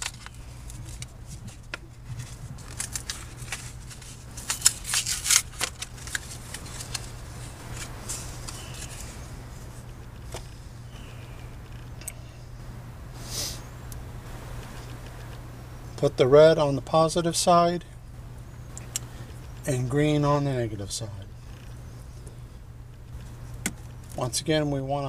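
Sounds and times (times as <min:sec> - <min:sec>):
plastic package crinkling: 0:00.0 - 0:10.5.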